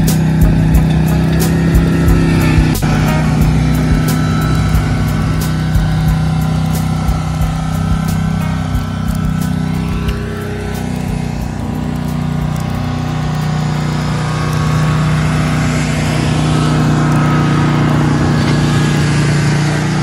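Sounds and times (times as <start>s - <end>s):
paving machine engine running: 0.0s - 20.0s.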